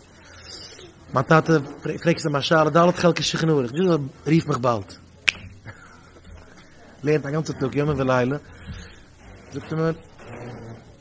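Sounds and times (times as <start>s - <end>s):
man lecturing: 1.1s - 5.0s, 7.0s - 8.5s, 9.4s - 10.1s.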